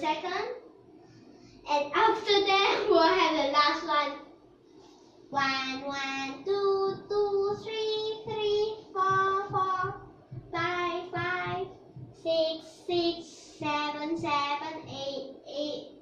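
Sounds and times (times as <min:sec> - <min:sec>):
girl chanting in sing-song voice: 0:05.3 - 0:16.0.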